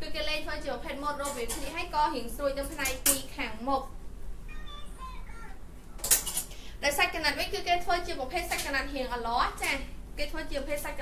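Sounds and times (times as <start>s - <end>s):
woman speaking: 0.0s - 4.0s, 6.8s - 11.0s
faint high-pitched voice: 4.5s - 6.2s.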